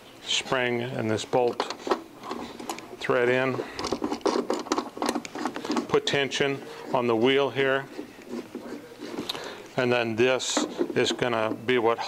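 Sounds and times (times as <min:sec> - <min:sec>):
bolt threading clicks and scratching: 0:03.8 - 0:06.2.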